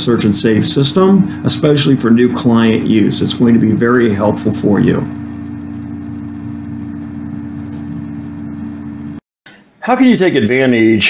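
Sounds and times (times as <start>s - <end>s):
steady low hum with held tones: 0.0s - 10.9s.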